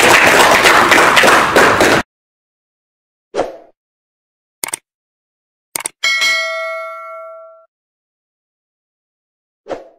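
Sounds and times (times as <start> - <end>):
audience applauding: 0.0 - 2.0.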